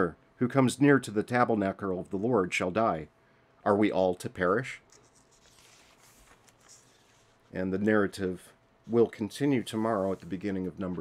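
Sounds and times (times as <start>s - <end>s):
soft rustling: 4.8s - 7.6s, 8.8s - 11.0s.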